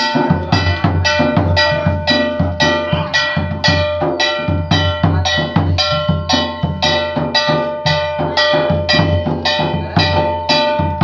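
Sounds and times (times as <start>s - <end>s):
low drum beat: 0.0s - 11.0s
metallic ringing strikes: 0.0s - 11.0s.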